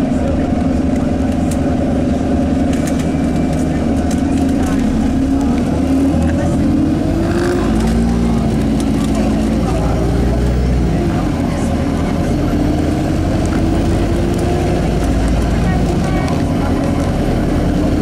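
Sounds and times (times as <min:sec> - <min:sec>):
bus engine running: 0:00.0 - 0:18.0.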